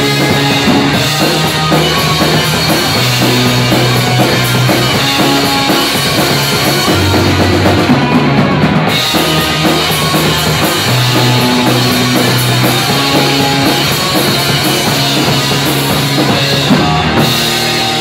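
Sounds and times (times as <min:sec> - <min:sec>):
drum kit: 0:00.0 - 0:18.0
electric bass: 0:00.0 - 0:18.0
electric guitar: 0:00.0 - 0:18.0.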